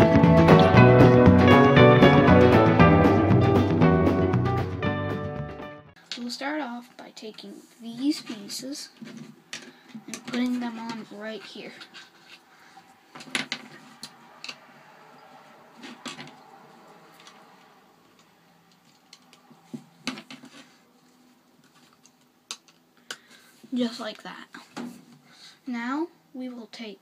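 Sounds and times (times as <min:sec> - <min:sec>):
light rustle of handling: 0:18.2 - 0:22.3
plastic bricks clicking and snapping: 0:22.0 - 0:23.2.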